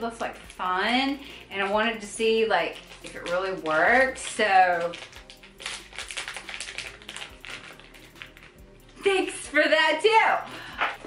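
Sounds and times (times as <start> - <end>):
plastic packaging crinkling: 2.2 - 8.6.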